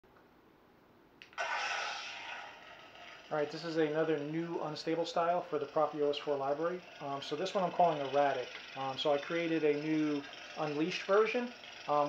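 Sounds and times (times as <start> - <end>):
lightsaber ignition and hum: 1.2 - 12.0.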